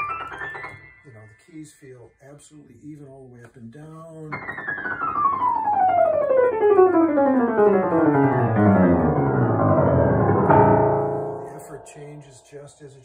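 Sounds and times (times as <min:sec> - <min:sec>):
piano chord ringing: 0:00.0 - 0:01.6, 0:04.3 - 0:12.7
descending piano run: 0:04.3 - 0:12.7.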